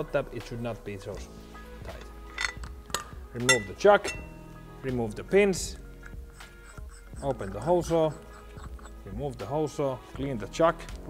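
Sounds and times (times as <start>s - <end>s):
background music with beat: 0.0s - 11.0s
metal tool parts clinking: 1.8s - 4.3s.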